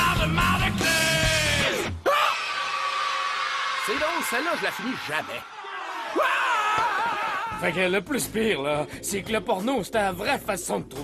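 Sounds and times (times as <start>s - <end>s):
held shout: 1.6s - 7.8s.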